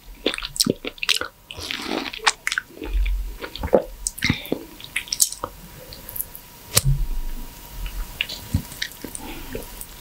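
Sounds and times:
low bump: 0:06.8 - 0:07.6.

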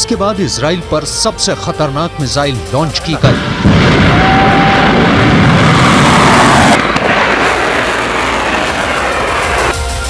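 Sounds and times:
rocket motor roaring: 0:03.3 - 0:09.8.

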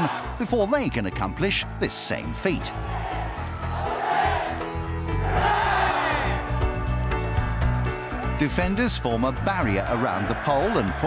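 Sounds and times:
crowd shouting together: 0:00.0 - 0:00.4, 0:02.8 - 0:06.6, 0:09.6 - 0:11.0.

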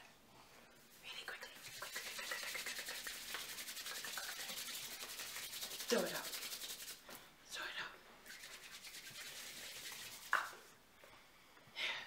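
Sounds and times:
soft hiss: 0:00.0 - 0:12.0.

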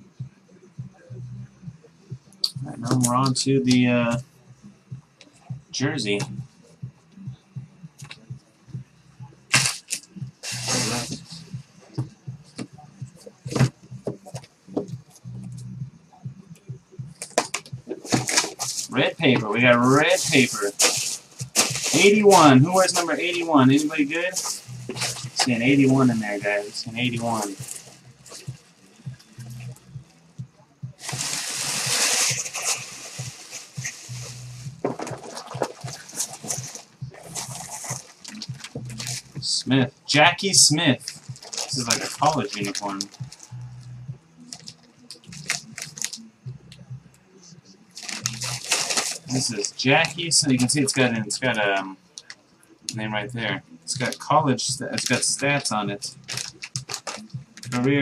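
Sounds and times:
faint low hum: 0:00.0 - 0:58.0
tissue paper rustling: 0:09.5 - 0:11.3, 0:18.0 - 0:28.6, 0:31.0 - 0:39.3, 0:41.0 - 0:43.5, 0:48.0 - 0:49.8
plastic bag crinkling: 0:17.4 - 0:28.6, 0:31.0 - 0:39.2, 0:41.0 - 0:43.5, 0:44.5 - 0:46.2, 0:48.0 - 0:49.7, 0:56.2 - 0:57.8.

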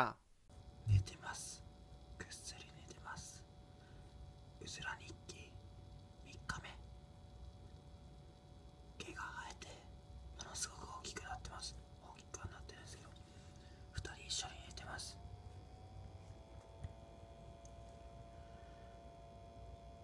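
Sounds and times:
faint steady hum: 0:00.0 - 0:20.0
person whispering: 0:00.9 - 0:01.6, 0:02.2 - 0:03.5, 0:04.6 - 0:05.6, 0:06.2 - 0:06.9, 0:09.0 - 0:13.2, 0:14.0 - 0:15.2.

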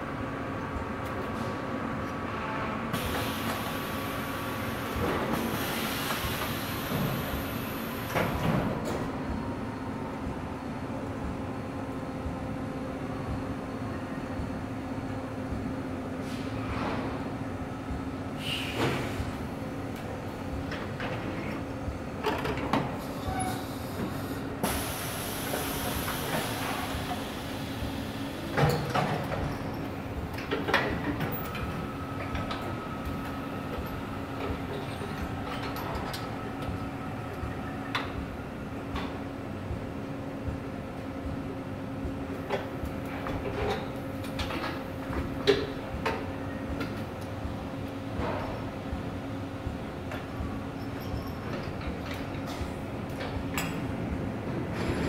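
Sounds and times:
air hissing: 0:03.0 - 0:08.5, 0:18.4 - 0:19.3, 0:23.1 - 0:28.5
steady machine hum: 0:09.0 - 0:22.3, 0:24.3 - 0:55.0.

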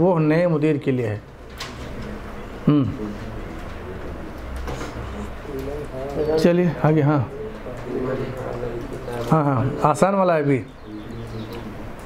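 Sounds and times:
pigeon cooing: 0:07.2 - 0:09.8, 0:10.7 - 0:12.0.

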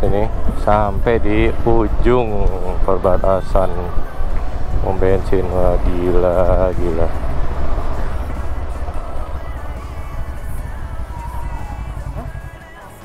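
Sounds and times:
wind noise: 0:00.0 - 0:12.4
faint music: 0:00.0 - 0:13.0
motorcycle engine rumble: 0:00.0 - 0:13.0.

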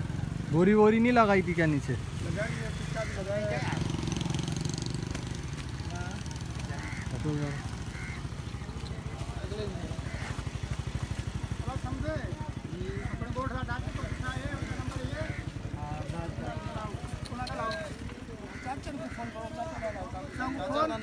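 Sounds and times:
engine idling: 0:05.5 - 0:21.0
people talking: 0:11.6 - 0:21.0.

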